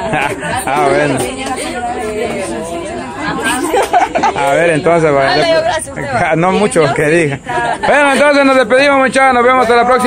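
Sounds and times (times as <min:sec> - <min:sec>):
women chattering: 0:00.0 - 0:10.0
laughter: 0:03.5 - 0:04.7.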